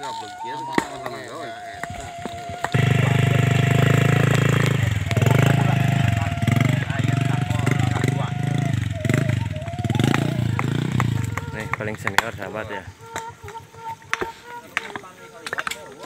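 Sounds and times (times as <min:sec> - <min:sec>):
motorcycle engine revving: 0:01.8 - 0:15.2.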